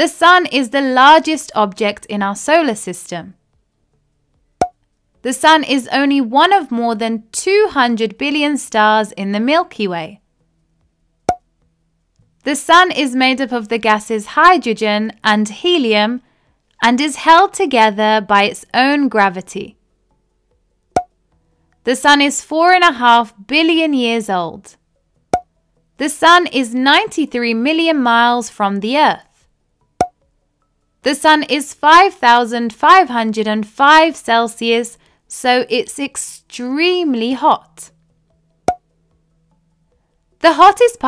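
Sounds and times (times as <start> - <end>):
woman narrating: 0.0 - 3.4, 5.3 - 10.2, 12.5 - 16.2, 16.8 - 19.8, 21.9 - 24.7, 26.0 - 29.3, 31.1 - 37.9, 40.4 - 41.0.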